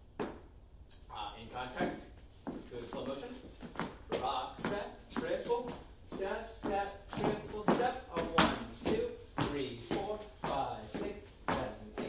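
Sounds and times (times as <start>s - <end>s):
person calling out rhythmically: 4.1s - 12.0s.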